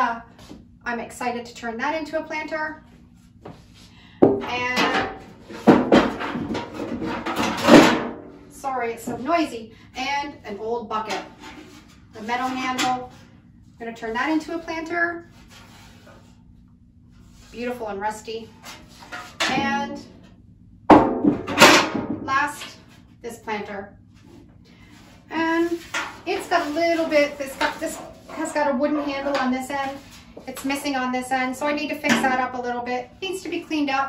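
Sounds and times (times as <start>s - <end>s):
metal buckets clanking: 4.4s - 8.3s, 19.1s - 20.2s
metal buckets clanking and scraping: 4.4s - 9.5s, 18.6s - 20.2s, 25.3s - 30.7s, 32.0s - 32.6s.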